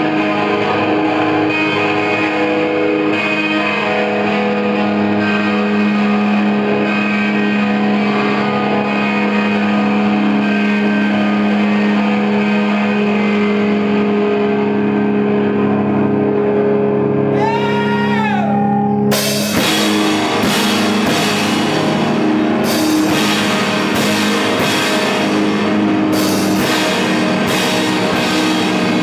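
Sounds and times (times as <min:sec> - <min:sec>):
distorted rock guitar drone: 0:00.0 - 0:29.0.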